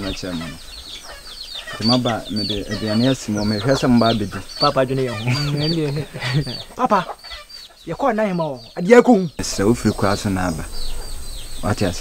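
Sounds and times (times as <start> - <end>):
man speaking: 0.0 - 0.6, 1.7 - 7.2, 7.8 - 10.7, 11.6 - 12.0
birds chirping: 0.0 - 12.0.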